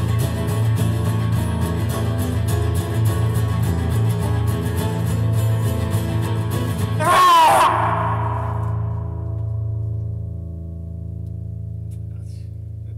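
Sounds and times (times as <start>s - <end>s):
acoustic guitars strumming: 0.0s - 12.2s
short loud cry: 7.0s - 9.2s.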